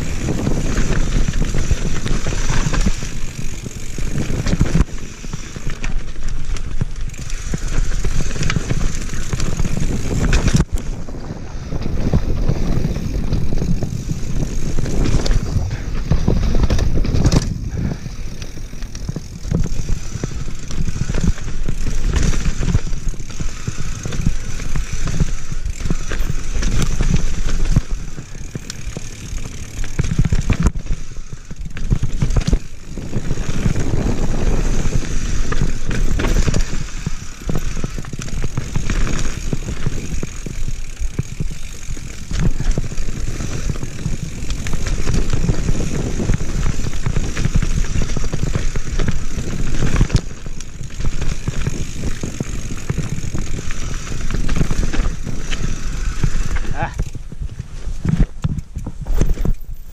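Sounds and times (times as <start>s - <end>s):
wind on microphone: 0.0s - 29.0s, 29.9s - 59.9s
bike clattering over bumps: 0.0s - 59.9s
tyres rolling on dirt: 0.0s - 59.9s.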